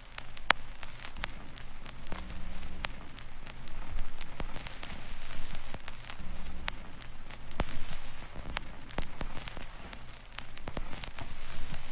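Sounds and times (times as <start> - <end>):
faint low hum: 0.0 - 11.9
sharp clicks and crackles: 0.0 - 11.9
steady rain-like hiss: 0.0 - 11.9.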